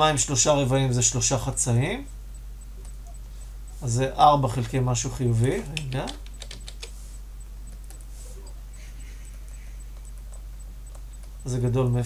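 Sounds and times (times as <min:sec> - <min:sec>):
low electrical hum: 0:00.0 - 0:12.0
computer keyboard clicks: 0:05.7 - 0:07.0, 0:09.3 - 0:11.4.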